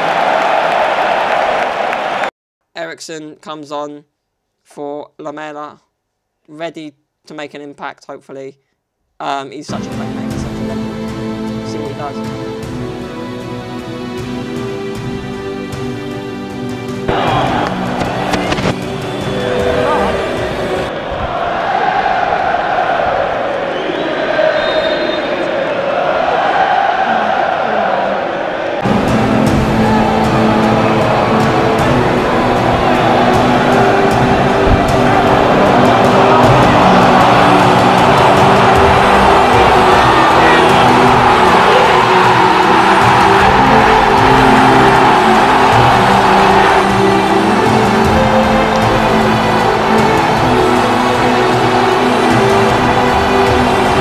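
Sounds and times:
crowd roaring and cheering: 0.0 - 2.3, 13.6 - 54.0
background music: 9.2 - 24.8, 25.6 - 54.0
stadium crowd singing: 17.1 - 54.0.

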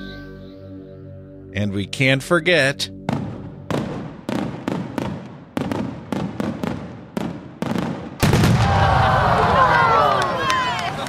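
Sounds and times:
firework bangs: 3.1 - 9.8.

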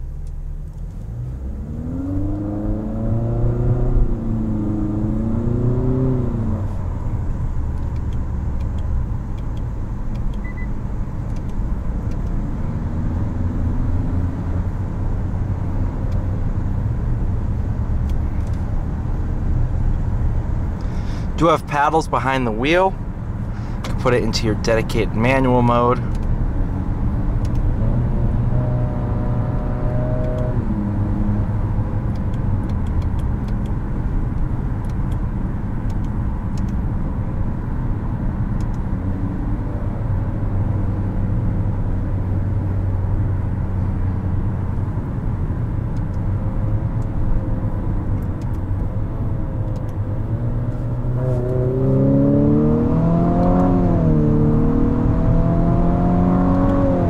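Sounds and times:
car engine humming: 0.0 - 57.0
tyre and road noise: 0.0 - 57.0.

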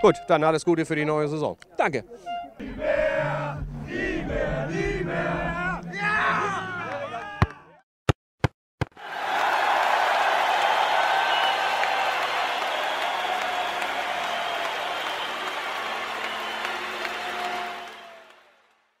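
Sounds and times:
faint cheers and whistles: 9.0 - 18.8
crowd applauding: 9.0 - 19.0.

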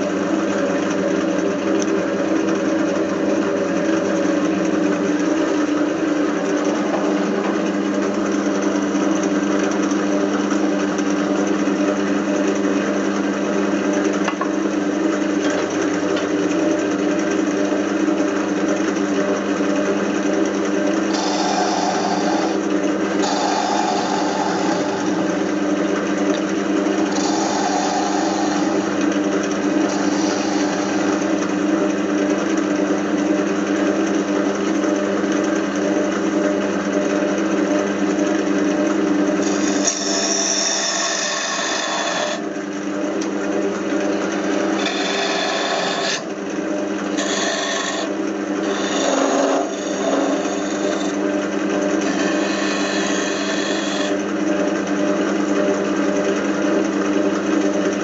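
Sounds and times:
turning tool cutting wood: 0.0 - 58.0
wood lathe motor hum: 0.0 - 58.0.

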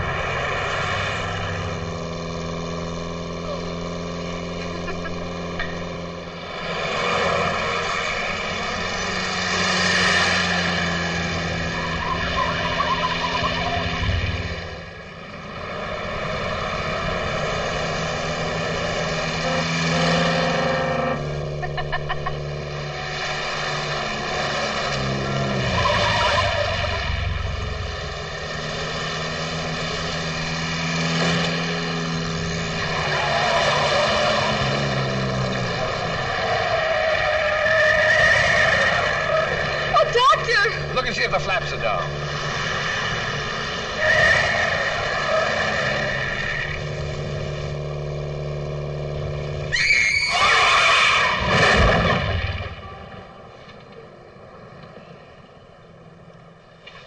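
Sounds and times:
sports car engine accelerating: 0.0 - 50.3.

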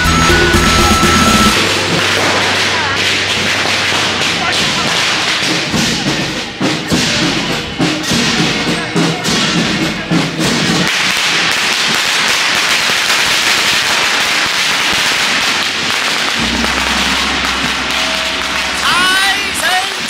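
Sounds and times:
firecrackers crackling: 0.0 - 20.0
rhythmic percussion thumps: 0.0 - 20.0.

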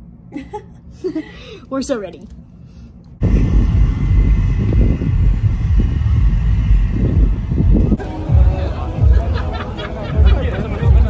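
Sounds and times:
wind buffeting microphone: 3.2 - 9.2.

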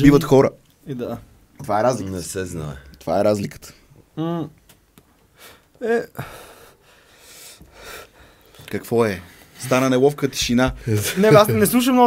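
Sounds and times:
person breathing: 5.3 - 8.6.

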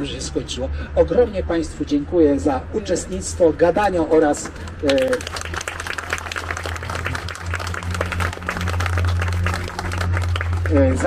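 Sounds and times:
people applauding: 4.4 - 11.0.

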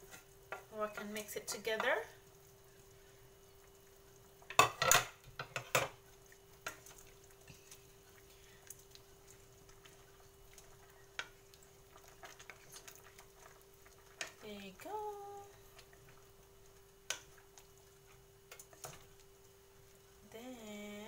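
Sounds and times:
wooden spatula stirring in pot: 0.0 - 20.6.

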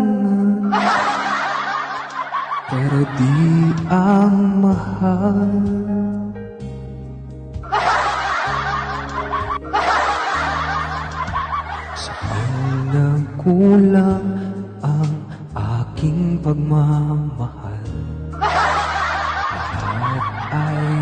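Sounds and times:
man singing into a microphone: 0.0 - 0.8, 2.7 - 6.4, 12.0 - 18.1, 19.8 - 21.0
karaoke backing track: 0.0 - 21.0
chattering laughter-like noise: 0.7 - 3.9, 7.6 - 13.2, 18.4 - 21.0.

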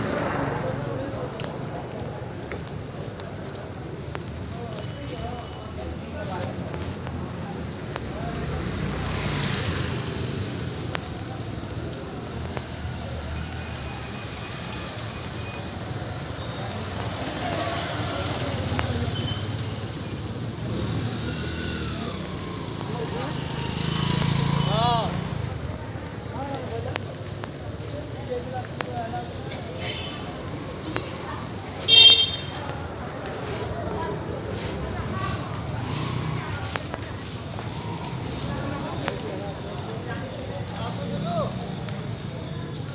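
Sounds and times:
faint voices: 0.0 - 42.9
small motor vehicle engines: 6.4 - 42.9
motor scooter passing: 17.0 - 25.7.

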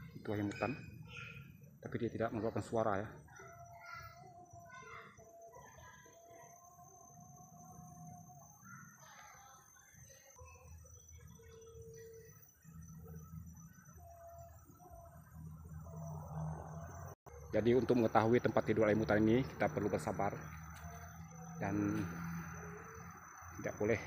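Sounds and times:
birds whistling: 0.0 - 2.4
high insect drone: 0.0 - 24.0.

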